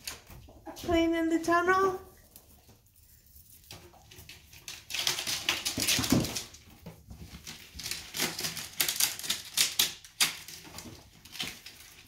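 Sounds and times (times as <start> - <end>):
ferrets rustling in packing peanuts: 3.6 - 12.0.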